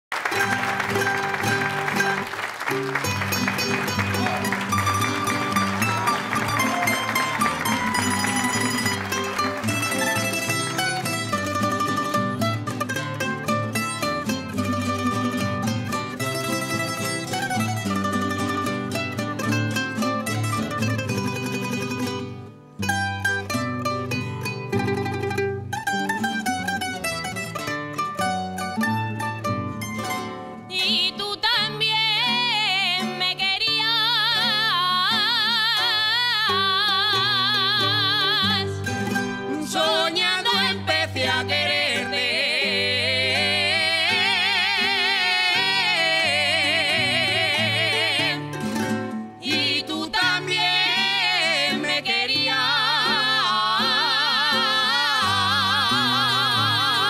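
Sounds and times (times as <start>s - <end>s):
plucked strings and guitars playing: 0.1s - 57.0s.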